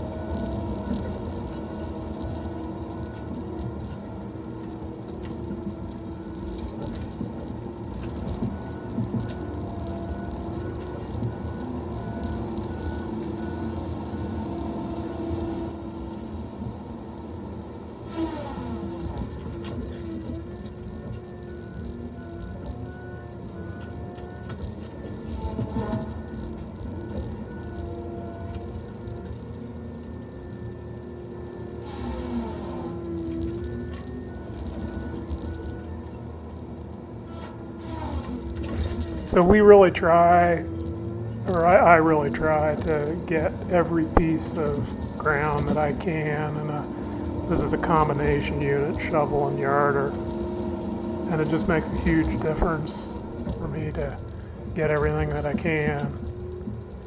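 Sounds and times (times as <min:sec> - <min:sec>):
engine and hydraulic drone: 0:00.0 - 0:57.0
hydraulic whines: 0:00.0 - 0:57.0.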